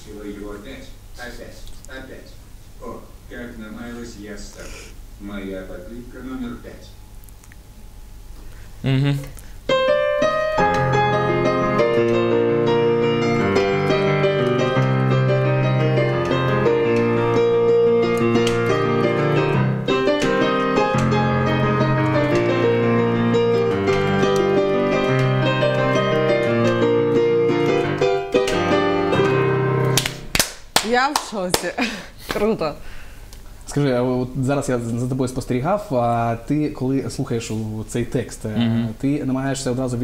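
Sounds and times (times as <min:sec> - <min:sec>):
piano playing pop melody: 0:09.7 - 0:30.5.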